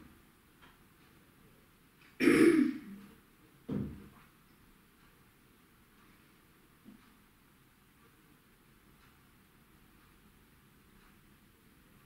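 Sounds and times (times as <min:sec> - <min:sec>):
woman clearing her throat: 0:02.2 - 0:03.0.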